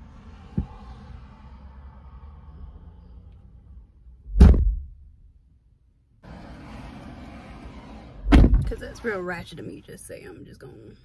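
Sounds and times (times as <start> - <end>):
car door thumping shut: 4.3 - 4.9, 8.3 - 8.7.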